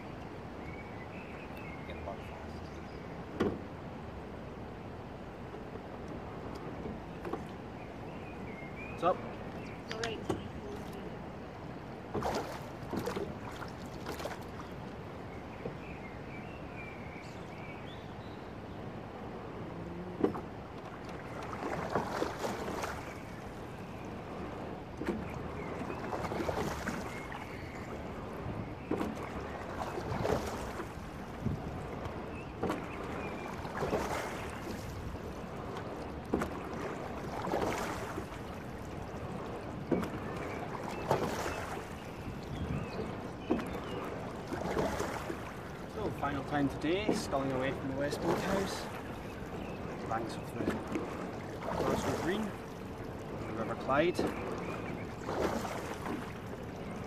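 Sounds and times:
water rushing along boat hull: 0.0 - 57.0.

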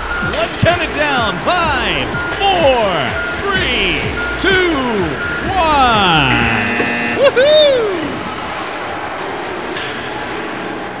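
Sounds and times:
crowd noise in an arena: 0.0 - 11.0
spectator shouting: 0.4 - 8.5.

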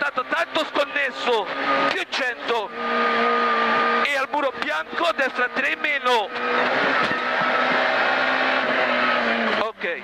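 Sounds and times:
car engine running: 0.0 - 10.0
road noise: 0.0 - 10.0.

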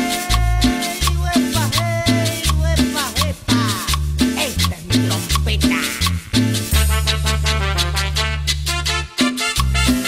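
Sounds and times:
cumbia bass line: 0.0 - 10.0
sliding lead melody: 0.0 - 10.0
steady percussion: 0.0 - 10.0.

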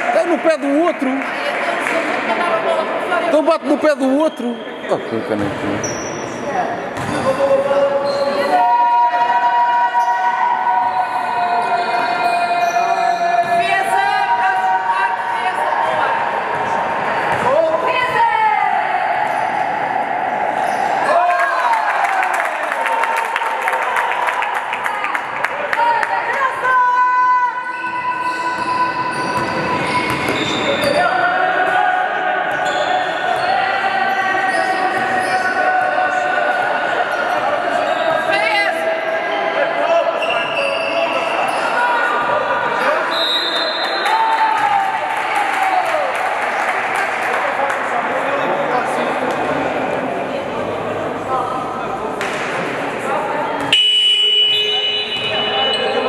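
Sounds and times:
people shouting and chatting: 0.0 - 56.0
sneakers squeaking: 4.0 - 8.6, 10.0 - 13.9, 15.8 - 18.2, 19.2 - 19.8, 20.6 - 21.1, 27.6 - 31.2, 32.5 - 35.8, 40.1 - 43.9, 53.6 - 56.0
basketball bouncing on court: 7.0 - 7.3, 17.3 - 17.6, 28.6 - 31.0.

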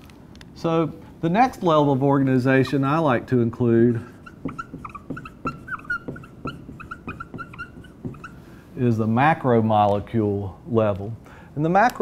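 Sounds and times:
marker squeaking on whiteboard: 2.2 - 8.9
marker tapping on whiteboard: 4.0 - 8.4.

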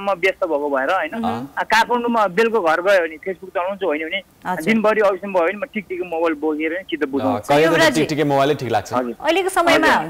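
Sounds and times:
person talking over telephone: 0.4 - 1.5.

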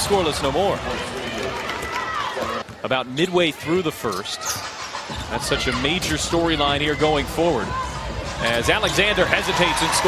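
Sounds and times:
arena crowd noise: 0.0 - 10.0
man commentating: 8.4 - 10.0.

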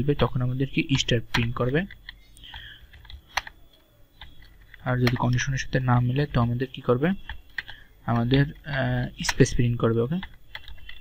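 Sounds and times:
faint keyboard typing: 0.0 - 11.0
sharp keyboard click: 1.3 - 5.5, 7.2 - 11.0.

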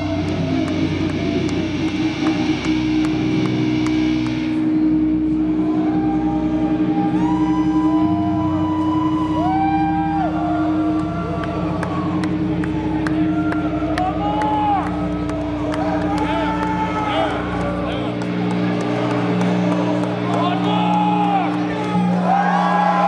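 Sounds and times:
guitar amplifier hum: 0.0 - 23.0
wavering guitar feedback tones: 0.0 - 23.0.

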